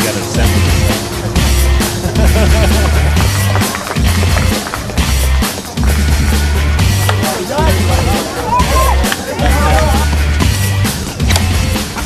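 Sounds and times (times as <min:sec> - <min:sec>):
drums: 0:00.0 - 0:12.0
loud rock music: 0:00.0 - 0:12.0
pulsing bass line: 0:00.0 - 0:12.0.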